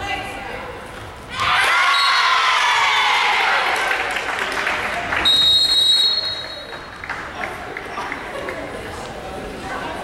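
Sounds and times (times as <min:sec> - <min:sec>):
crowd noise: 0:00.0 - 0:10.0
referee's whistle blast: 0:05.2 - 0:06.8.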